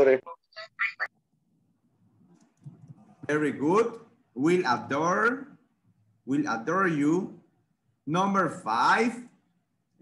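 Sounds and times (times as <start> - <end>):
person speaking over video call: 0.0 - 1.2, 2.3 - 9.4.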